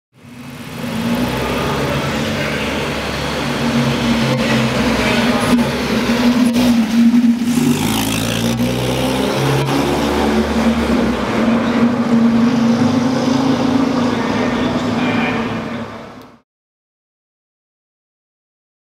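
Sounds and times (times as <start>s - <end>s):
car engine driving past: 0.3s - 16.2s.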